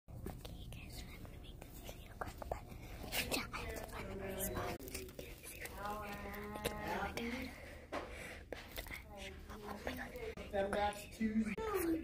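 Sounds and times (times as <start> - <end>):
girl whispering: 0.2 - 7.6, 8.7 - 12.0
girl speaking softly: 0.3 - 7.6, 11.0 - 12.0.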